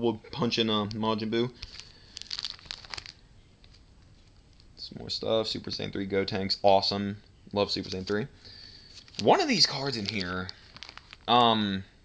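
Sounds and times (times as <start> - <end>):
plastic sleeve pages crinkling: 0.8 - 4.7, 7.8 - 8.2, 8.8 - 11.4.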